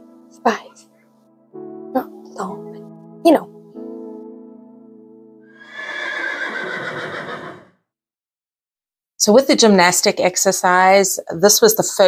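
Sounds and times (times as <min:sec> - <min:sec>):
horse whinnying: 0:05.6 - 0:07.8.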